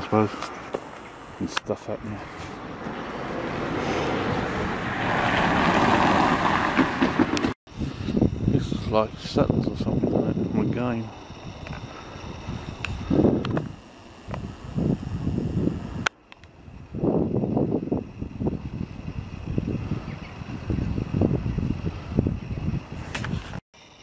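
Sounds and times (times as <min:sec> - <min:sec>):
wind buffeting microphone: 0:03.6 - 0:23.6.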